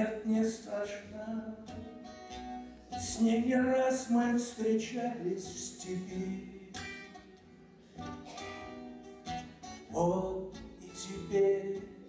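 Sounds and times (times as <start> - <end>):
acoustic guitar chords ringing: 0.0 - 12.0.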